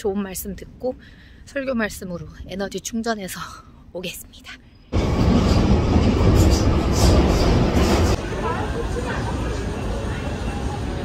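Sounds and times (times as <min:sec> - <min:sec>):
underground train rumble: 0:04.9 - 0:11.0.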